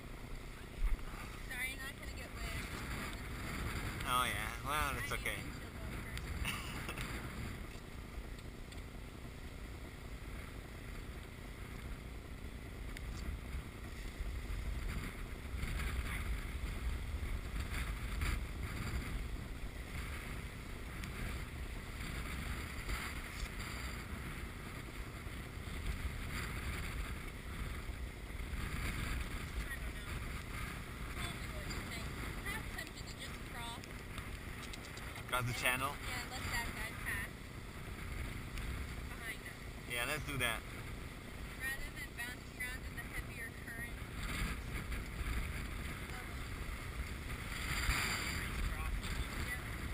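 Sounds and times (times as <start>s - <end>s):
water rushing along hull: 0.0s - 49.9s
wind buffeting microphone: 0.0s - 49.9s.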